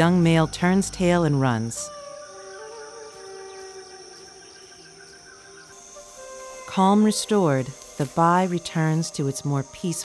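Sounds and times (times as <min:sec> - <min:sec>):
documentary score sustained notes: 0:00.0 - 0:10.0
high insect drone: 0:00.0 - 0:10.0.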